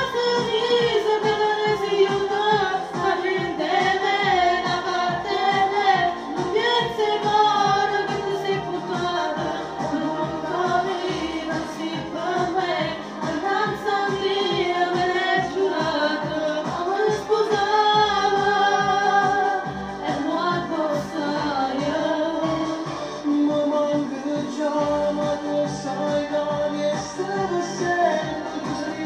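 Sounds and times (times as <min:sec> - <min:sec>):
person singing into microphone: 0:00.0 - 0:29.0
pop backing track: 0:00.0 - 0:29.0.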